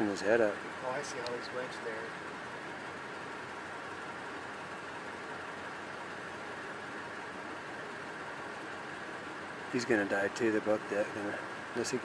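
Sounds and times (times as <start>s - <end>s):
low hiss and rumble: 0.0s - 12.0s.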